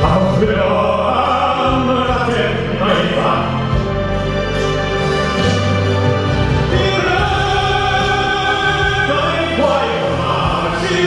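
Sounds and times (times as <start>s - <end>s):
man singing into a microphone: 0.0s - 3.8s, 6.7s - 11.0s
instrumental accompaniment with bass: 0.0s - 11.0s.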